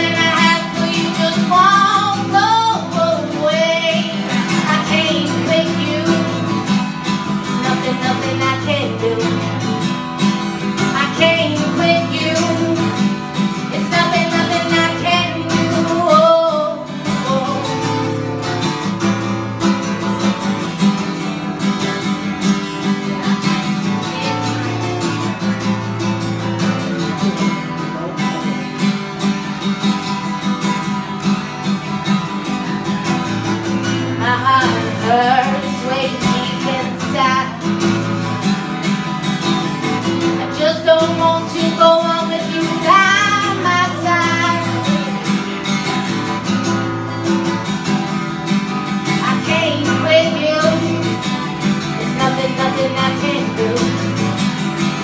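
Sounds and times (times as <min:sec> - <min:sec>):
woman singing: 0:00.0 - 0:18.3, 0:23.8 - 0:25.2, 0:33.8 - 0:38.4, 0:40.0 - 0:45.4, 0:49.0 - 0:54.8
acoustic guitar: 0:00.0 - 0:55.0.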